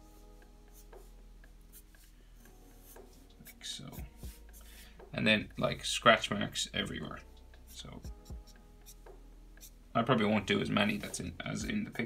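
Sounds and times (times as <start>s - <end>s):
faint music: 0.0s - 12.0s
marker scratching on paper: 0.1s - 4.8s, 7.7s - 9.8s, 10.8s - 12.0s.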